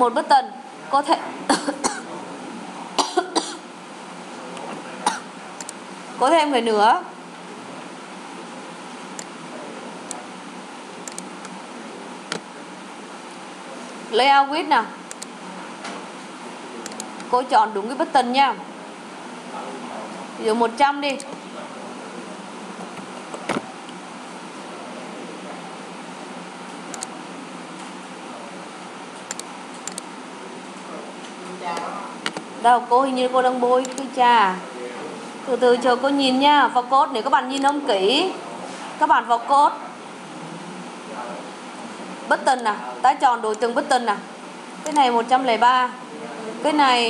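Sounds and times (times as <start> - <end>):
person clearing throat: 1.5 - 2.2, 3.0 - 3.7, 5.0 - 5.4
computer click: 11.0 - 11.6, 15.1 - 15.3, 16.8 - 17.3, 26.9 - 27.1, 29.3 - 30.1, 33.8 - 34.1, 44.8 - 45.1.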